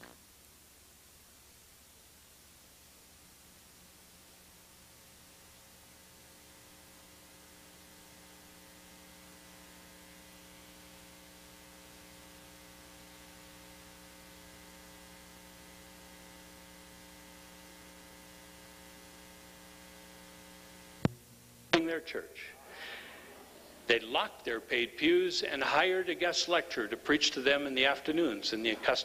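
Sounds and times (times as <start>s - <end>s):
electrical mains hum: 0.0s - 29.0s
low hiss: 0.0s - 29.0s.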